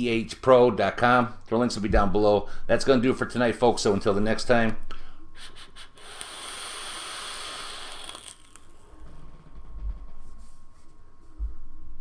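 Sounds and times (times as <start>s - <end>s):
air hissing through vaporizer: 5.4s - 9.0s.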